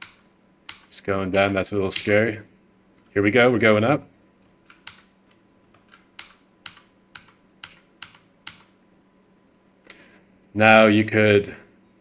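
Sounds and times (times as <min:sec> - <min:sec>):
keyboard keys clicking: 0:04.7 - 0:05.1, 0:05.7 - 0:08.7.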